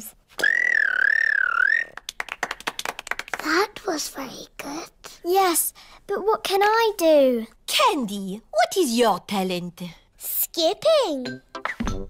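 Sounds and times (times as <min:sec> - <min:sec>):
high wavering whistle-like note: 0:00.4 - 0:01.9
group clapping: 0:01.8 - 0:03.6.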